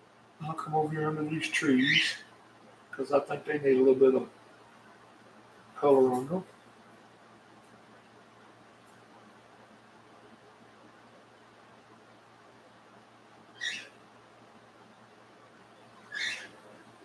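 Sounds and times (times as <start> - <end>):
cockatiel calling: 1.8 - 2.2, 13.6 - 14.0, 16.0 - 16.6.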